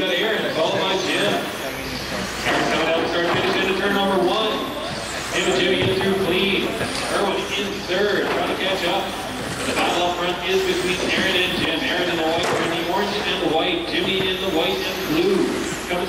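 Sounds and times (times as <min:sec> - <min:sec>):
indistinct man speaking: 0:02.4 - 0:16.0.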